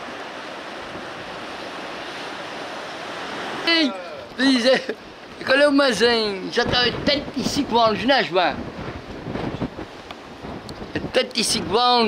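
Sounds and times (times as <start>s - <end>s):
ocean surf breaking on rocks: 0.0s - 12.0s
person speaking: 3.6s - 8.6s.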